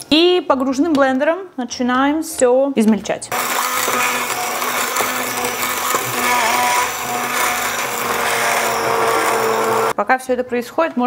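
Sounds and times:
immersion blender running: 0:03.3 - 0:10.0.

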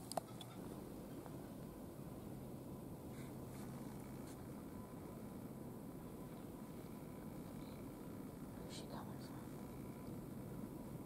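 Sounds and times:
low background hiss: 0:00.0 - 0:11.0
person whispering faintly: 0:08.6 - 0:09.6.

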